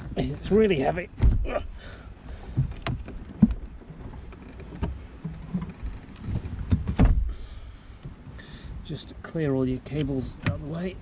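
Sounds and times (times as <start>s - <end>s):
heavy battery thump: 1.2s - 1.6s, 6.7s - 7.5s
plastic knocks and clicks: 2.6s - 7.3s.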